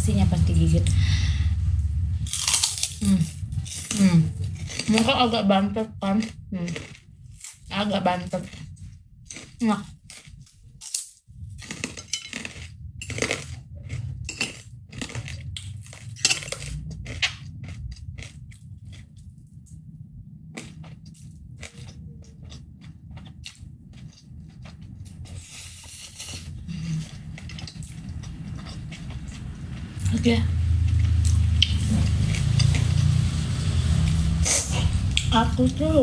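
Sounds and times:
cracker crunching: 0:02.2 - 0:05.4, 0:06.1 - 0:19.9, 0:20.5 - 0:30.0, 0:30.8 - 0:35.3.

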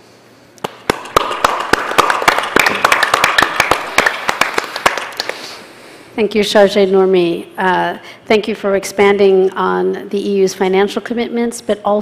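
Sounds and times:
audience applauding: 0:00.8 - 0:05.4.

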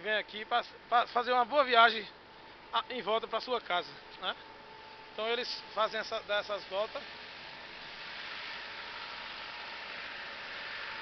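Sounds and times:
minibus passing: 0:05.8 - 0:11.0.

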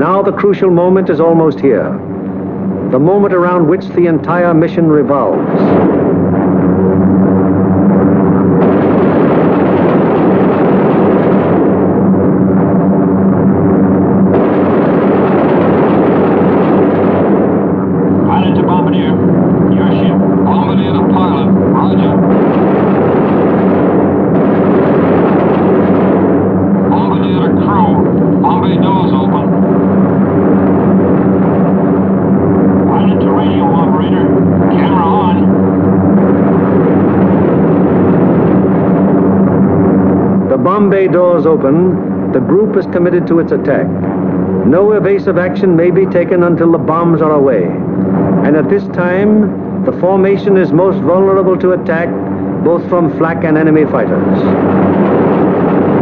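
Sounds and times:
aircraft radial engines droning: 0:00.0 - 0:56.0.

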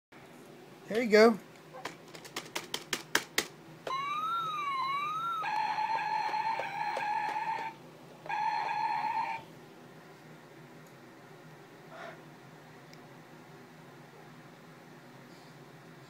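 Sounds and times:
electronic buzz tone: 0:03.9 - 0:09.4
electronic gliding tones: 0:03.9 - 0:09.4.

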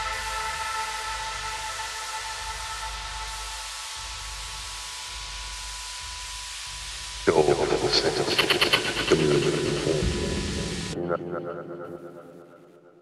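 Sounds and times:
white-noise hiss: 0:00.0 - 0:11.0
low bass: 0:07.1 - 0:11.0
synth chords: 0:07.3 - 0:13.0.

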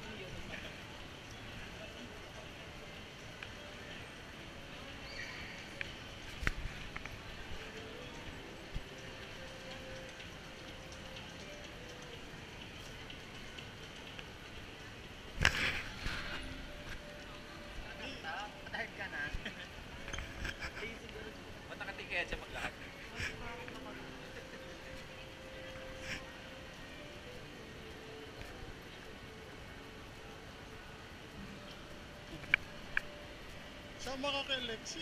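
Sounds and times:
faint background music: 0:00.0 - 0:35.0
indistinct crowd chatter: 0:00.0 - 0:35.0.

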